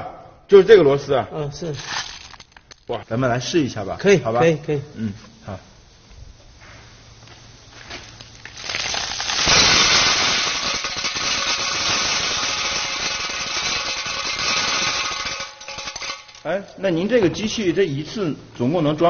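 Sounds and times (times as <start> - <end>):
snail shells rattling on metal: 1.8 - 2.9, 8.5 - 16.9.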